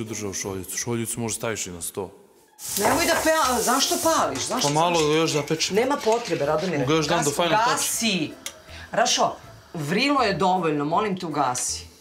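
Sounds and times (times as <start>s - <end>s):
food sizzling in a saucepan: 2.5s - 12.0s.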